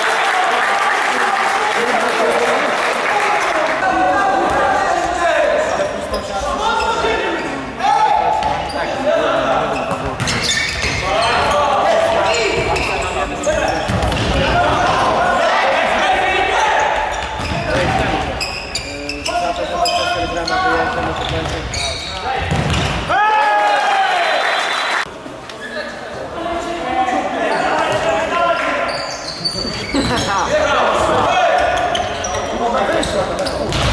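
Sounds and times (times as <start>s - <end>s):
voices calling out: 1.0s - 22.6s
ball kicked and bouncing: 22.4s - 23.0s.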